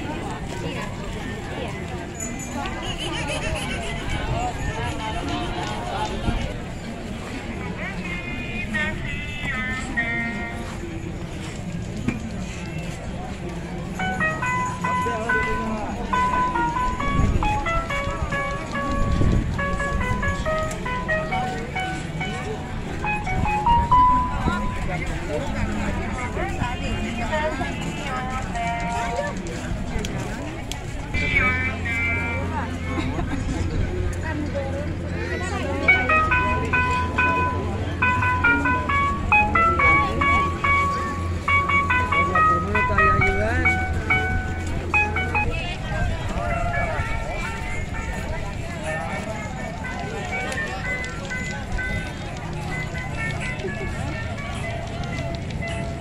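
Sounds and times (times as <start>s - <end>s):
crowd chatter: 0.0s - 56.0s
electronic jingle melody: 14.0s - 25.8s, 35.6s - 47.4s.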